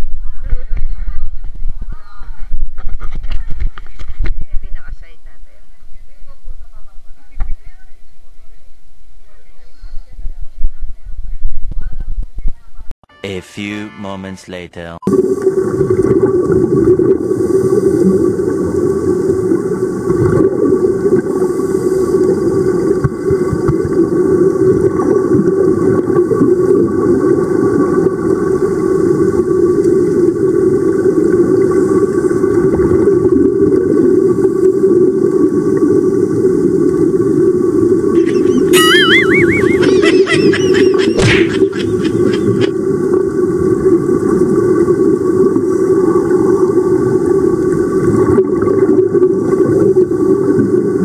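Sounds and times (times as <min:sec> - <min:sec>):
underwater rumble of water: 0:15.1 - 0:38.2, 0:42.7 - 0:51.0
warbling high whistle: 0:38.2 - 0:42.7
air bubbles rising: 0:42.7 - 0:51.0.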